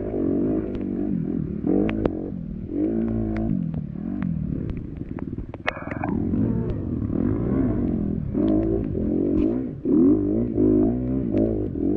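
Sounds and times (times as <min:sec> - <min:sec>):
dirt bike engine revving: 0:00.0 - 0:05.0, 0:05.6 - 0:11.9.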